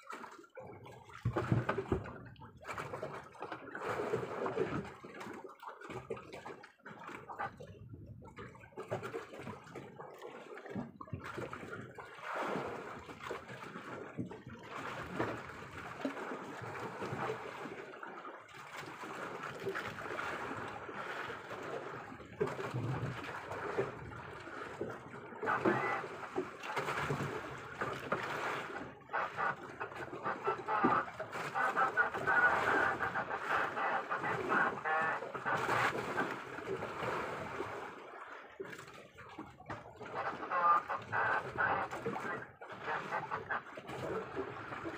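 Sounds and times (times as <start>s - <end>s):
water splashing against boat: 0.0s - 44.9s.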